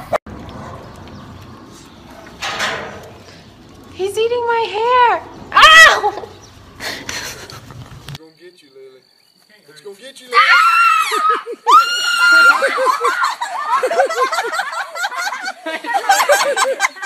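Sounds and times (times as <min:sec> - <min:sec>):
girl screaming: 0:05.5 - 0:06.3, 0:10.3 - 0:12.7.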